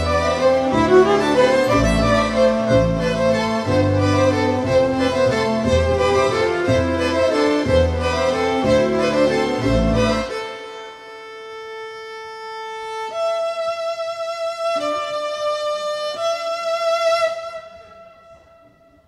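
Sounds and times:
bass-heavy accompaniment: 0.0s - 10.5s
violin playing sustained notes: 0.0s - 19.0s.

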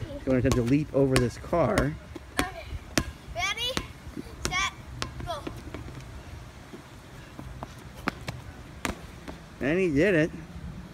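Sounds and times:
low outdoor background: 0.0s - 10.9s.

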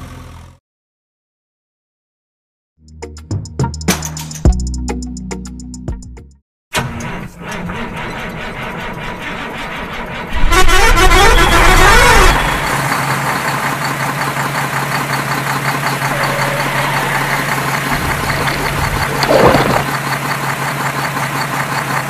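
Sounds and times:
truck engine running: 0.0s - 0.6s, 6.8s - 22.0s
loud wavering truck horn: 10.3s - 12.9s, 16.0s - 19.8s.

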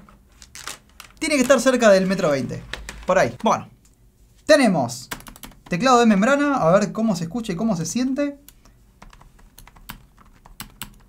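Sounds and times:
keyboard typing: 5.1s - 5.8s, 8.5s - 11.0s.

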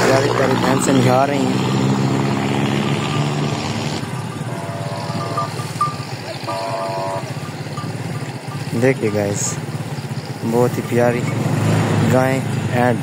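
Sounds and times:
low engine drone: 0.0s - 12.1s
short higher-pitched tones: 4.4s - 7.9s.

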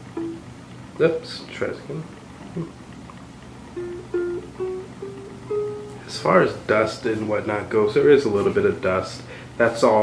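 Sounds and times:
ukulele notes plucked: 0.0s - 0.5s, 3.7s - 6.1s.

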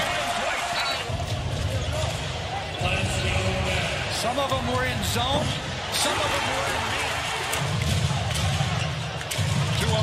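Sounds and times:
faint voices in arena: 0.0s - 10.0s.

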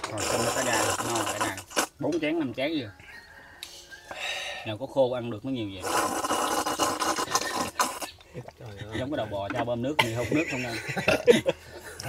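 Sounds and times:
gulp: 0.0s - 2.0s, 5.8s - 9.1s
man slurping porridge: 0.0s - 2.0s, 5.8s - 9.2s.

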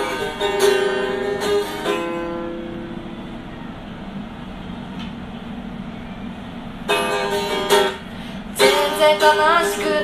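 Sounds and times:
acoustic guitar strum: 0.0s - 3.4s, 6.8s - 10.0s
steady background hiss: 0.0s - 10.0s.

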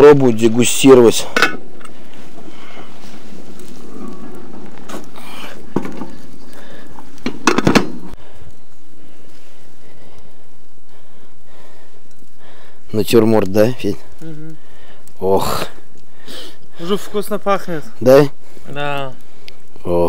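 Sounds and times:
stew simmering with hiss: 0.1s - 20.0s.

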